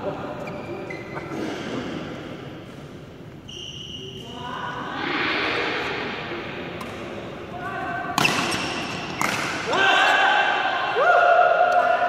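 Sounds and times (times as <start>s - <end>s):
shoes squeaking on court: 0.4s - 1.4s.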